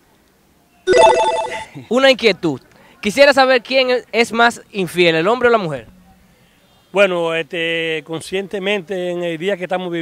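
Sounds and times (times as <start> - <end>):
electronic ringtone jingle: 0.9 - 1.8.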